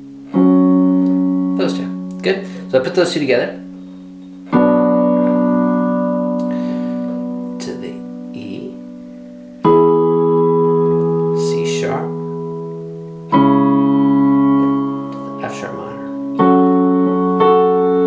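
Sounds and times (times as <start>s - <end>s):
piano chords on digital keyboard: 0.0s - 18.0s.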